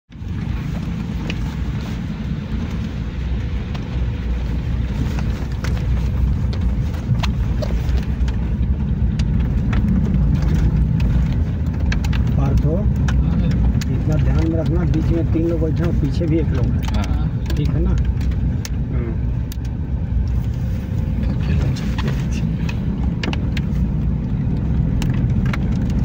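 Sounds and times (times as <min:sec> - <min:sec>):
engine and tyre rumble: 0:00.1 - 0:26.0.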